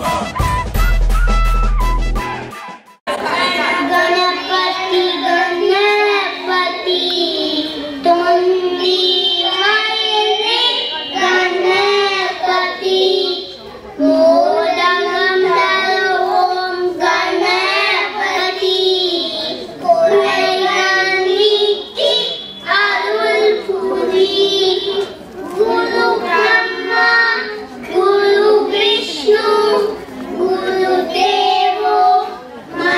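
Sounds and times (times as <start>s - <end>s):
children singing into microphones: 3.1s - 32.9s.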